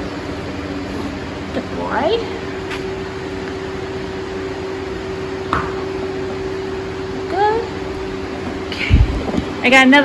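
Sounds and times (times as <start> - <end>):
electric fans humming: 0.0 - 10.0.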